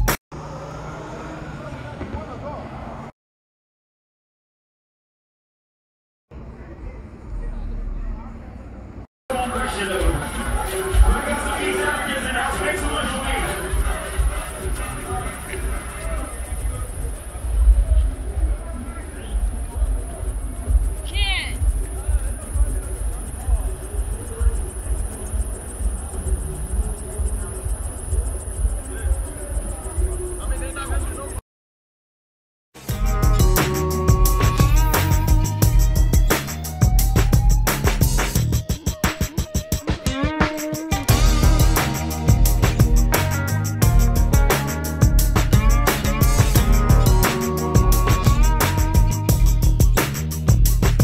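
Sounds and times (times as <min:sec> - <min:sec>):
low rumble of traffic: 0:00.3 - 0:03.1, 0:06.3 - 0:31.4
indistinct voices talking: 0:06.4 - 0:31.4, 0:40.1 - 0:51.0
insects trilling: 0:19.2 - 0:31.4.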